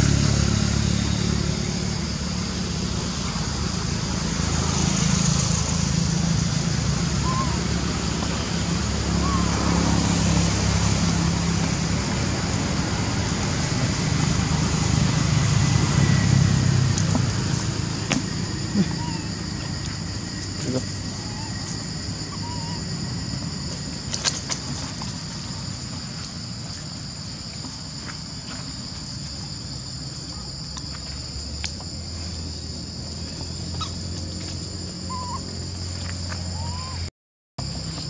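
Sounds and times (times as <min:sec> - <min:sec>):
high-pitched insect drone: 0:00.0 - 0:38.0
low engine hum: 0:00.0 - 0:38.0.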